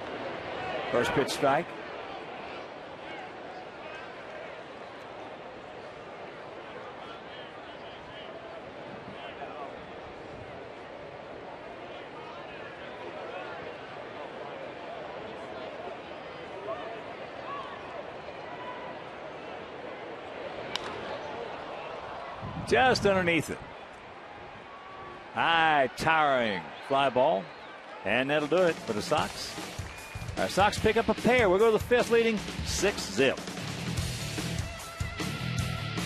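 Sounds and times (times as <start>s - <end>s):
crowd chatter: 0.0s - 33.4s.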